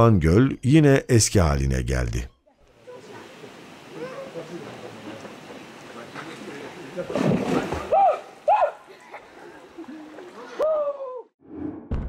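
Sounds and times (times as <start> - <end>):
steady background hiss: 2.1 - 10.6
water splashing: 2.7 - 10.6
people shouting: 7.6 - 9.0, 9.9 - 11.3.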